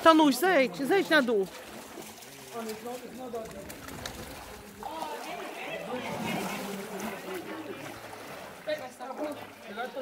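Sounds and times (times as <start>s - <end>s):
water sloshing and splashing: 0.0s - 10.0s
faint voices: 2.0s - 10.0s.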